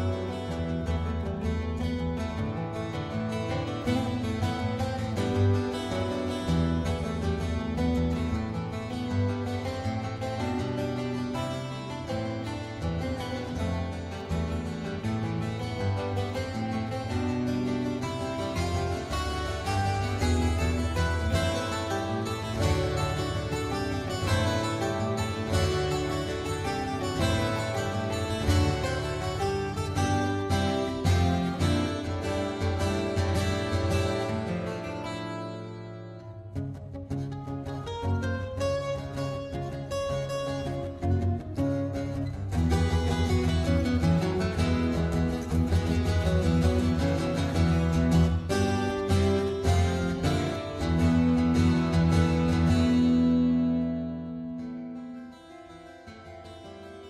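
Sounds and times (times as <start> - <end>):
instrumental music with plucked notes: 0.0 - 57.0.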